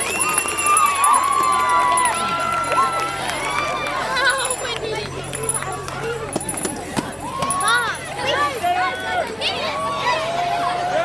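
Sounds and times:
girls shouting excitedly: 7.2s - 11.0s.

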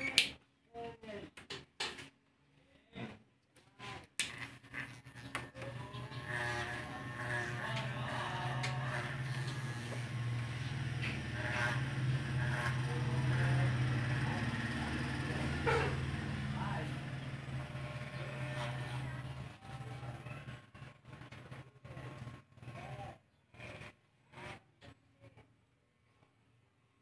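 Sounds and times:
electric hair clipper buzzing: 4.2s - 19.6s, 23.6s - 24.7s.

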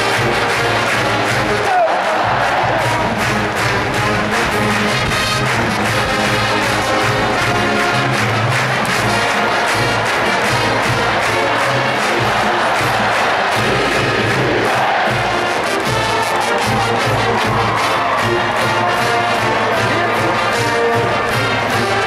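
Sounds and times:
marching band brass: 0.0s - 22.0s
stadium crowd noise: 0.0s - 22.0s
steady drum beat: 0.0s - 22.0s.

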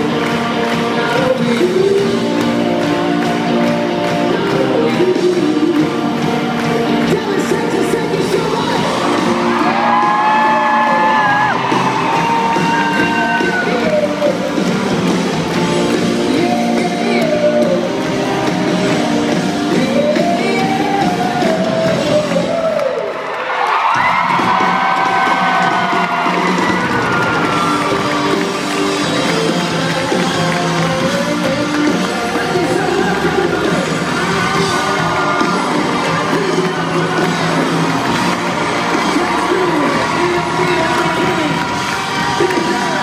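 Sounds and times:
live band music: 0.0s - 23.0s, 24.2s - 43.0s
crowd cheering: 0.0s - 43.0s.

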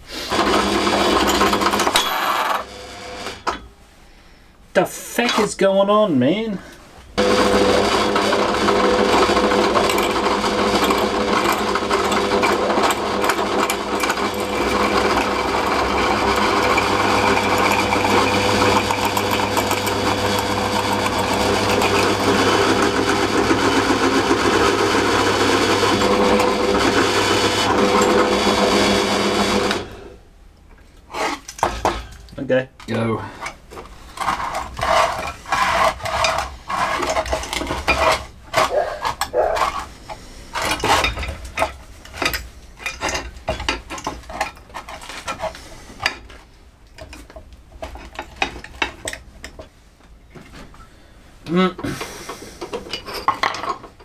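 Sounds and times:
drill press drilling: 0.3s - 3.6s, 7.2s - 30.1s.

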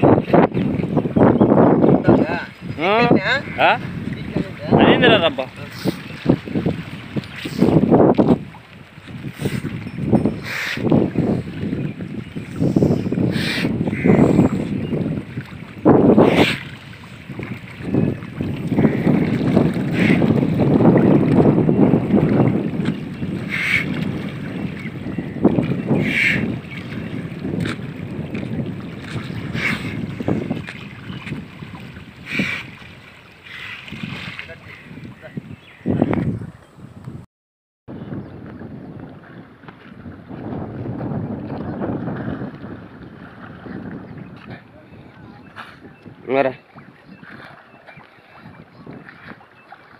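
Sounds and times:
water splashing: 0.0s - 36.5s, 38.5s - 49.9s
wind buffeting microphone: 0.0s - 37.3s, 37.9s - 49.9s.

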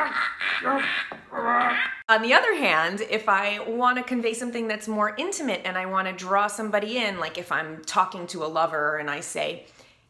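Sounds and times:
cartoon boy choking gurgles: 0.0s - 2.0s.

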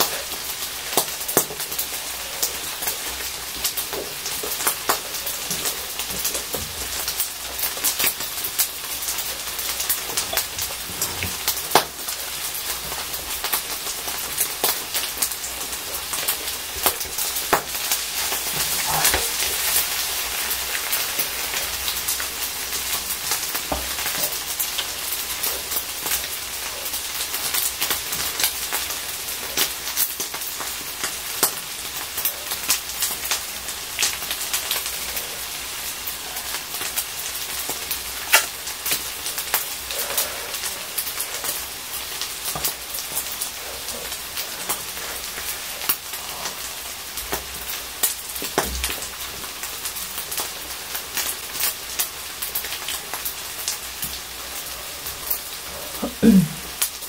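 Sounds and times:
rice sizzling on a grill plate: 0.0s - 57.0s.

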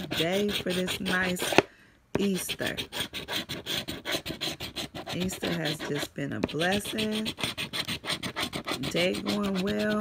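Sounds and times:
coin scratching lottery ticket: 0.0s - 1.4s, 2.4s - 10.0s.

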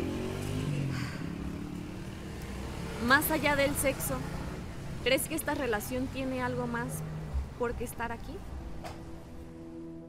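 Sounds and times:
vehicle engine passing: 0.0s - 7.8s.

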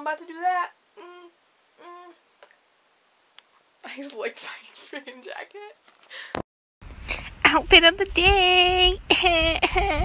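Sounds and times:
woman humming: 1.0s - 2.2s.

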